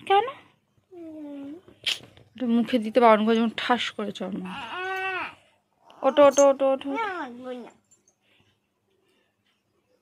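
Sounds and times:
child speaking: 0:00.9 - 0:01.6, 0:06.9 - 0:07.8
child whining: 0:04.6 - 0:06.2.

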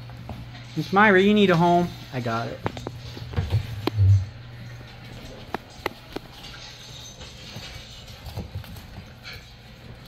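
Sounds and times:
puppy paws tapping on floor: 0:00.0 - 0:00.8, 0:02.6 - 0:04.3, 0:04.9 - 0:09.7.

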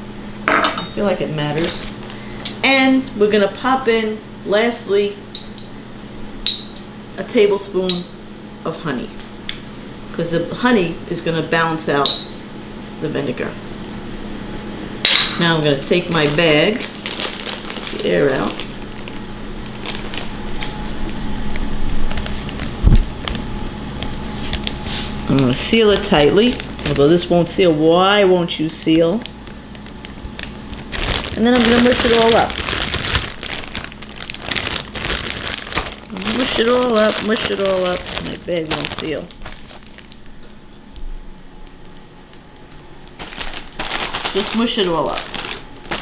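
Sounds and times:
steady low hum: 0:00.0 - 0:46.0
plastic bag crinkling: 0:01.4 - 0:02.4, 0:15.8 - 0:20.8, 0:24.5 - 0:27.7, 0:29.0 - 0:40.5, 0:41.6 - 0:46.0.

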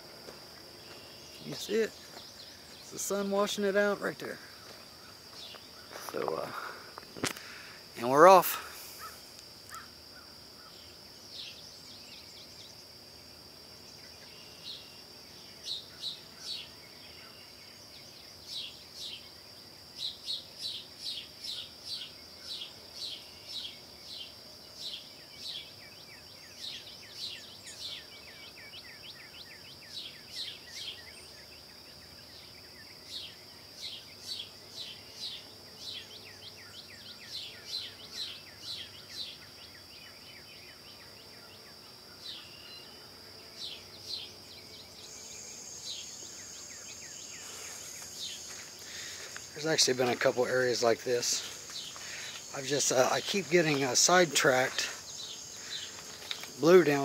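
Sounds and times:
high-pitched insect drone: 0:00.0 - 0:57.0.

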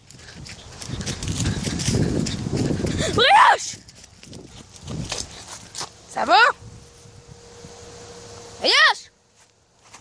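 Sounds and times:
rustling through plants: 0:00.0 - 0:10.0.

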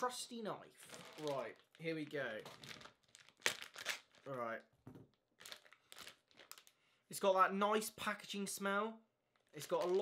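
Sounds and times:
plastic bag crinkling: 0:00.8 - 0:04.6, 0:05.4 - 0:06.8, 0:09.3 - 0:10.0.

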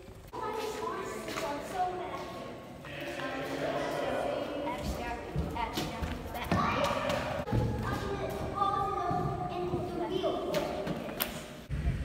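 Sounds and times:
indistinct voices talking: 0:00.2 - 0:11.2.

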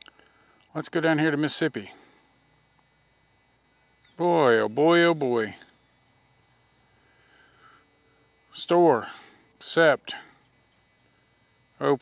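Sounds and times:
faint background hiss and hum: 0:00.0 - 0:12.0.

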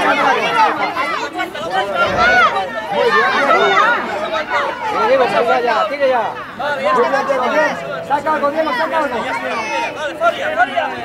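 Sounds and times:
many voices shouting: 0:00.0 - 0:07.6.

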